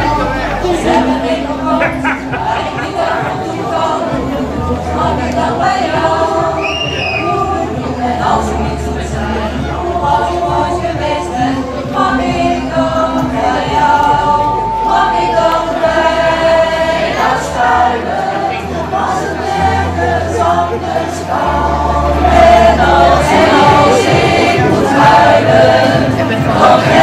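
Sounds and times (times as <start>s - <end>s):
choir singing in harmony: 0.0s - 27.0s
low bass accompaniment: 0.0s - 27.0s.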